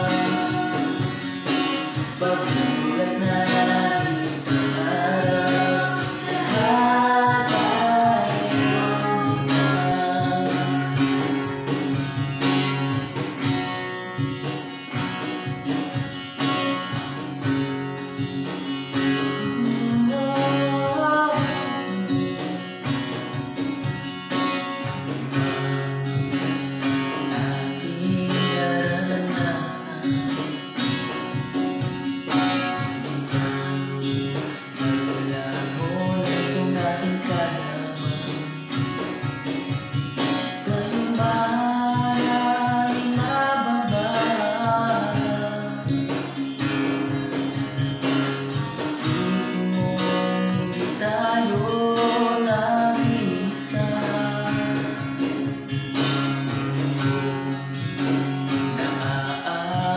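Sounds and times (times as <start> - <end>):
man and woman singing: 0.0 - 12.1, 19.0 - 23.3, 26.2 - 30.9, 33.3 - 38.8, 40.2 - 46.7, 48.5 - 56.2, 57.0 - 59.9
acoustic guitar strumming: 0.0 - 59.9.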